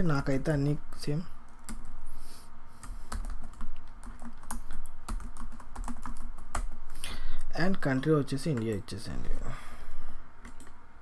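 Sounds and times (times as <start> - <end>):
keyboard typing: 1.5 - 2.0, 2.8 - 6.8, 10.4 - 10.8.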